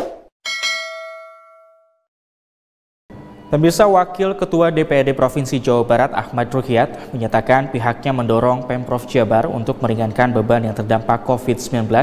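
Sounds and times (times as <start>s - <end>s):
notification bell ding: 0.5s - 2.1s.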